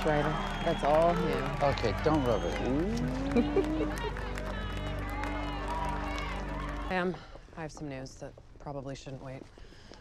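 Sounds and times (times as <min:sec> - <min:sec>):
crowd chatter: 0:00.0 - 0:07.4.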